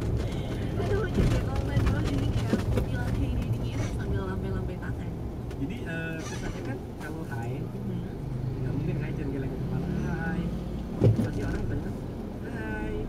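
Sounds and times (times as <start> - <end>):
car engine and road rumble: 0.0 - 13.0.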